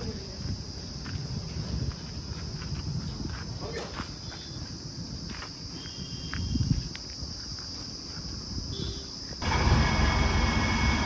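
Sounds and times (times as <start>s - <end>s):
steady high-pitched hiss: 0.0s - 11.0s.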